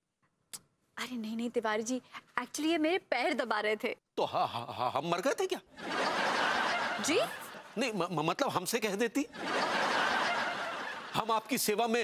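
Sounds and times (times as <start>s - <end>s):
recorded audience laughter: 5.8s - 7.9s, 9.2s - 11.6s.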